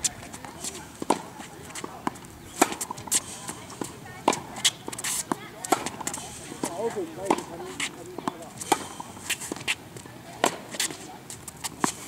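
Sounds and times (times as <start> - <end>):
tennis balls struck and bouncing: 0.1 - 12.0.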